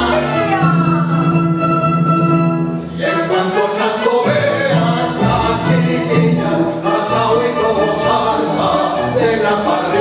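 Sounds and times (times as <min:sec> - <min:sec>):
ensemble singing: 0:00.0 - 0:10.0
orchestra strings: 0:00.0 - 0:10.0.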